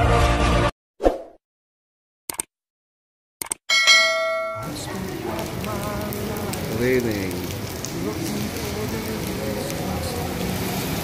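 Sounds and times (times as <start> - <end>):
notification bell chime: 3.7 - 4.7
rain on wet pavement: 4.6 - 11.0.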